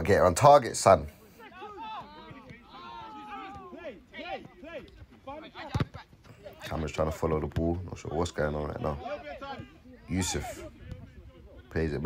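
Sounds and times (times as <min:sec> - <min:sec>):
footballers shouting: 0:00.0 - 0:12.0.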